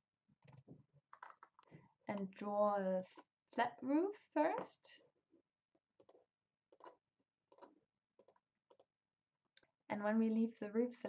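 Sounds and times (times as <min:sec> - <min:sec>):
computer mouse clicks: 0:00.4 - 0:02.3, 0:06.0 - 0:08.9.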